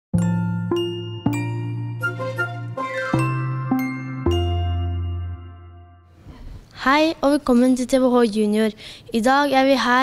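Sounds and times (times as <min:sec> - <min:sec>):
jingle with ringing struck notes: 0:00.2 - 0:06.1.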